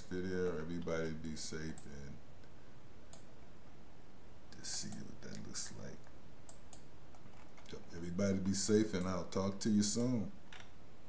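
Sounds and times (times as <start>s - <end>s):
low background noise: 0.0s - 11.0s
computer mouse click: 3.1s - 3.3s, 4.6s - 7.7s.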